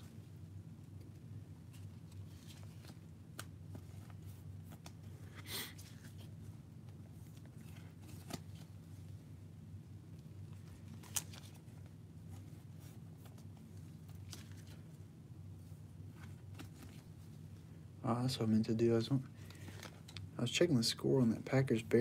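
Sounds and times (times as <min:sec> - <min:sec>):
steady low hum: 0:00.0 - 0:22.0
cards rustling: 0:00.9 - 0:09.1, 0:10.5 - 0:15.0, 0:16.0 - 0:17.4, 0:19.3 - 0:20.3.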